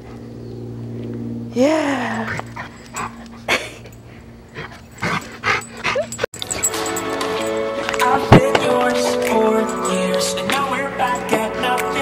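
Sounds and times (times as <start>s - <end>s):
dog whimpering: 5.6s - 6.3s
background music sustained notes: 6.4s - 12.0s.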